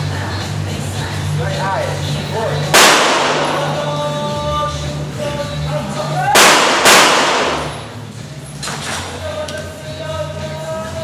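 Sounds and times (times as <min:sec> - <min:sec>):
background music: 0:00.0 - 0:11.0
pistol shots: 0:02.7 - 0:04.0, 0:06.4 - 0:08.0.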